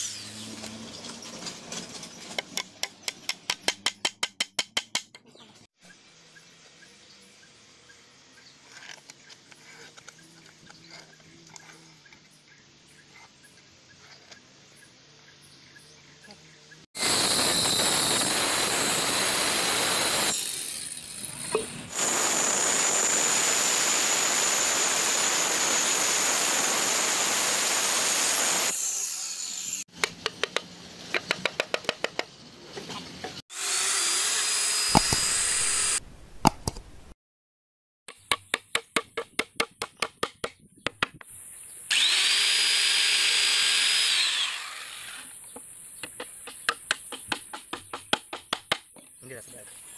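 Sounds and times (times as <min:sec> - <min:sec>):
circular saw cutting wood: 0:00.0 - 0:01.3, 0:17.0 - 0:29.9, 0:33.4 - 0:36.0, 0:41.9 - 0:45.4
faint workshop sounds: 0:00.0 - 0:15.2.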